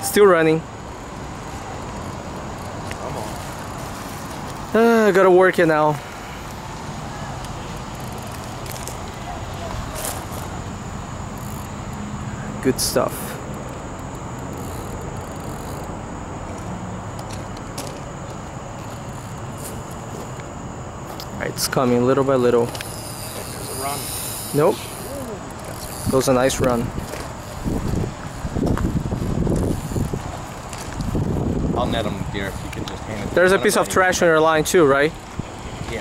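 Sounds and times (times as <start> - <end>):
outdoor background hiss: 0.0 - 36.0
high-pitched whine: 1.6 - 30.9.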